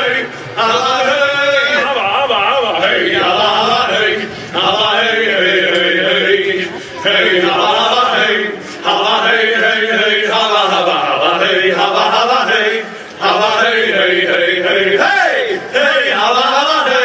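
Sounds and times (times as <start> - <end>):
men chanting in unison: 0.0 - 17.0.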